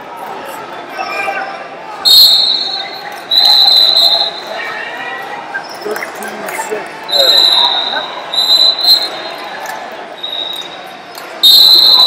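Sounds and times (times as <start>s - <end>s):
referee's whistle blowing: 2.0s - 4.8s, 7.1s - 9.5s, 10.2s - 12.0s.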